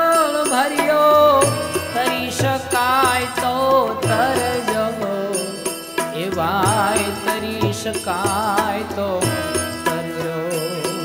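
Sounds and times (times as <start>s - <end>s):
instrumental accompaniment: 0.0s - 11.0s
man singing: 0.0s - 11.0s
drum beat: 1.3s - 5.2s, 6.2s - 10.4s.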